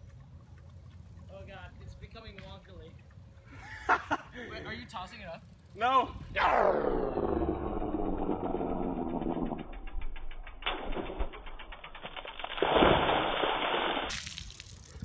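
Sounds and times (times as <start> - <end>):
deep pitch-lowered tones: 6.1 - 12.1
slowed splashing water: 11.2 - 15.0
water balloon bursting: 12.1 - 14.8.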